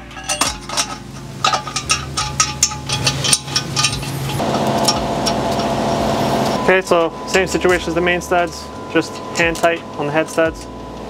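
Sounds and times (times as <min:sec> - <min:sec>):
metal studs clinking: 0:00.0 - 0:05.7
steady mechanical hum: 0:00.0 - 0:11.0.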